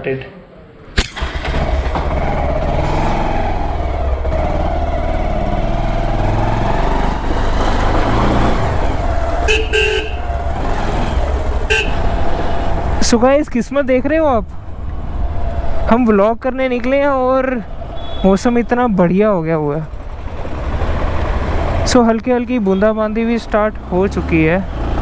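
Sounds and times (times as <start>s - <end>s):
motorcycle engine: 1.0s - 13.3s, 16.9s - 25.0s
short horn beeps: 9.5s - 10.2s, 11.7s - 12.0s.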